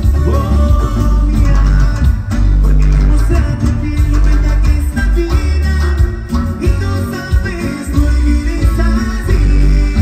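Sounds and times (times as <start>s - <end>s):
electric bass guitar: 0.0s - 10.0s
live cumbia band: 0.0s - 10.0s
percussion: 0.0s - 10.0s.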